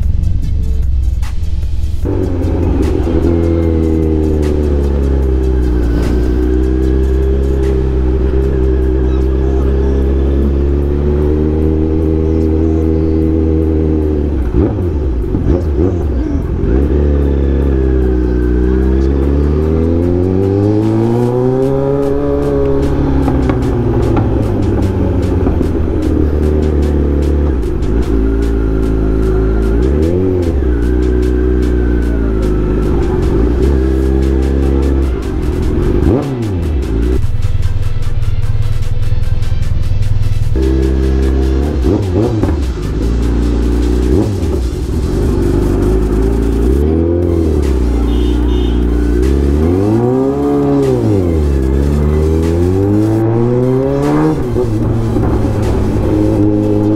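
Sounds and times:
motorcycle engine revving: 0.0 - 39.2, 40.1 - 56.9.

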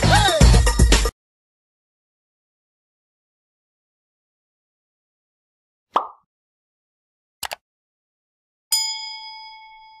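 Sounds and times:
bright bell ding: 8.7 - 10.0.

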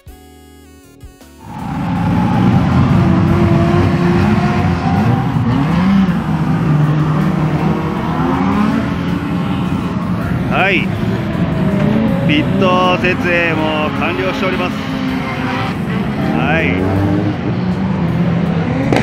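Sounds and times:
high rising squeal: 1.4 - 18.8
car engines revving: 1.4 - 19.0.

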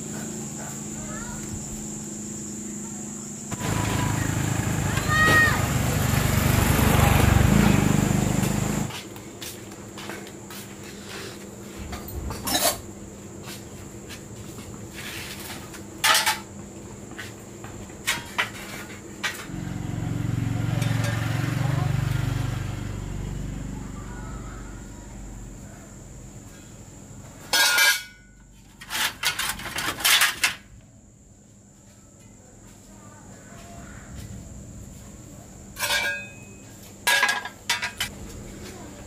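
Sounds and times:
metal items clanking: 27.5 - 28.2, 28.8 - 30.6, 35.8 - 38.1.

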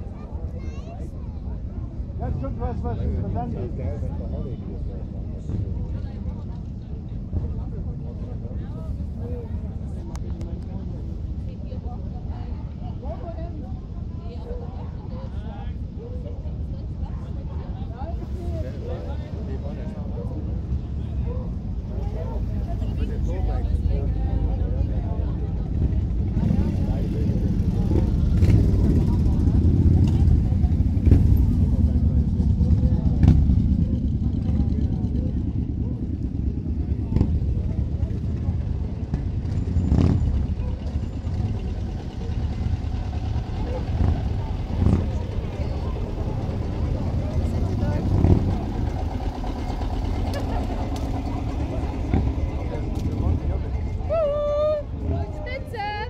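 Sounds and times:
crowd voices: 0.0 - 56.0
vehicle engines rumbling: 0.0 - 56.0.

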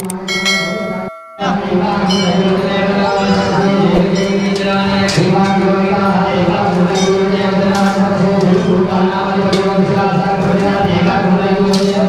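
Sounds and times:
metal bell ringing: 0.0 - 5.9.

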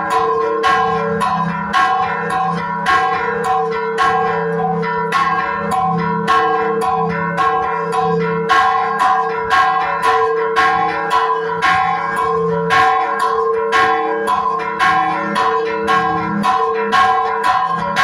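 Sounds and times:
church bells ringing quickly: 0.0 - 18.0
deep bell tolling: 0.0 - 18.0.

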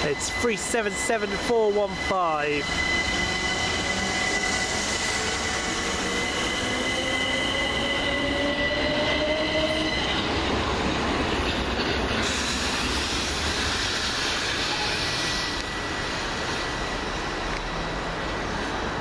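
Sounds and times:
steady high-pitched tone: 0.0 - 8.9
wheels rumbling on rails: 0.0 - 19.0.

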